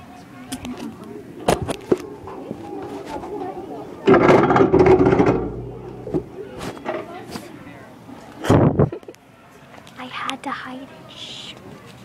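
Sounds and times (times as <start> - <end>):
muffled voices: 0.0 - 12.0
cloth rubbing on microphone: 1.9 - 3.4.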